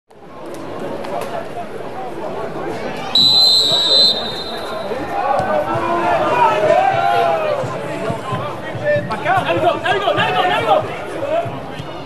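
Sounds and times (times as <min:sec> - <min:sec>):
referee's whistle blast: 0:03.1 - 0:05.0
players and spectators shouting: 0:03.2 - 0:08.3, 0:09.1 - 0:11.8.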